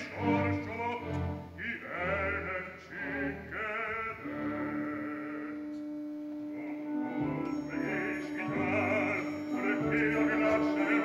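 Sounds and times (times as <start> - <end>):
sustained orchestral note: 4.5 - 11.0.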